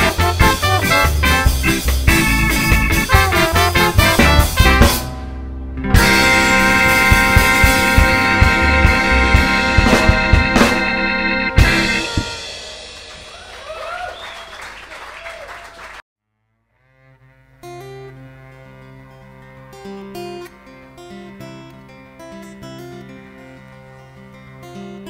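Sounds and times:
ska band with horn section: 0.0 - 13.7
strummed acoustic guitar: 5.8 - 12.5, 17.6 - 25.0.

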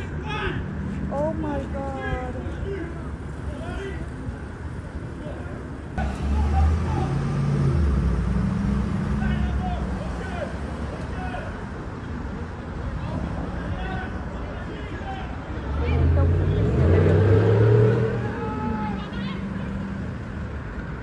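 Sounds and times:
distant voices: 0.0 - 21.0
vehicle engine humming: 0.0 - 21.0.

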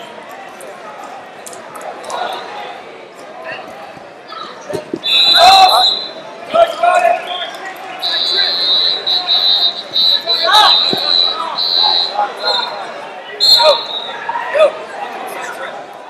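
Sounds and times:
high whistle blast: 5.0 - 6.2, 8.0 - 14.2
people shouting: 5.0 - 6.2, 8.0 - 14.7.

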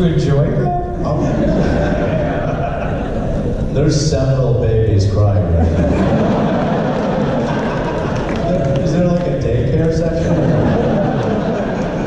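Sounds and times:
echoing speech: 0.0 - 6.2, 7.7 - 11.6
audience noise: 0.0 - 12.0.

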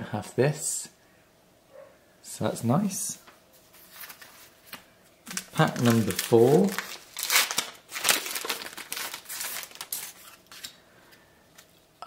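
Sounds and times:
wrapper tearing and crinkling: 5.3 - 10.8.

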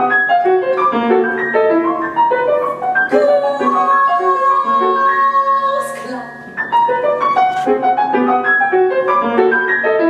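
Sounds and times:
grand piano playing: 0.0 - 10.0
soprano singing high note: 3.1 - 6.4.

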